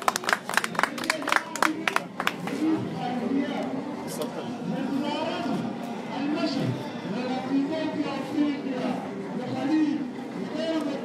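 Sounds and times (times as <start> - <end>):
small audience applauding: 0.0 - 2.5.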